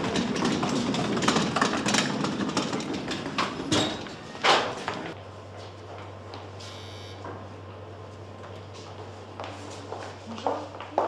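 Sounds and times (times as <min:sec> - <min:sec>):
laundry cart rattling: 0:00.0 - 0:05.2.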